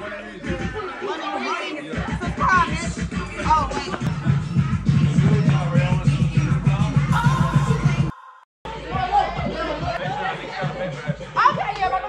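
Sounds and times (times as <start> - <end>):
background chatter: 0.0 - 5.7, 8.7 - 12.0
music: 0.0 - 12.0.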